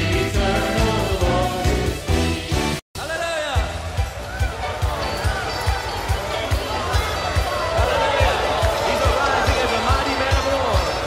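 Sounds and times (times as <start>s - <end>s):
voices singing: 0.0s - 2.4s.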